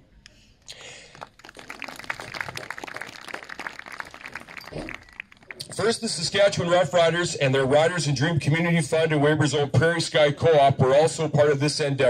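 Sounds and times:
light applause: 0.8 - 6.4.

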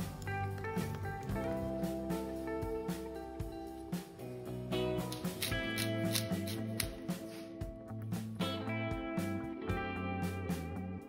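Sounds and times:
guitar music with steady beat: 0.0 - 11.0.

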